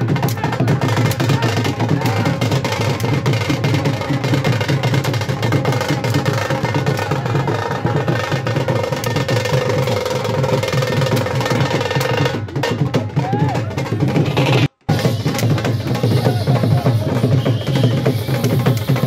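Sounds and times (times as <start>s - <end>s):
rapid drumming: 0.0s - 19.0s.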